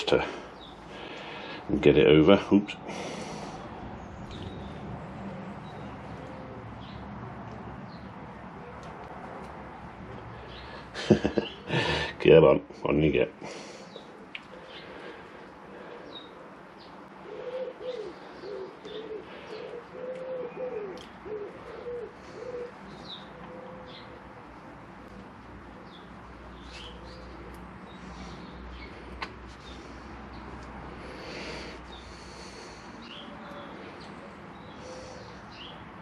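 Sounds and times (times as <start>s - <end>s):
small birds chirping: 0.0s - 9.6s, 10.2s - 36.0s
dove cooing: 4.4s - 6.8s, 15.8s - 24.6s, 34.6s - 35.7s.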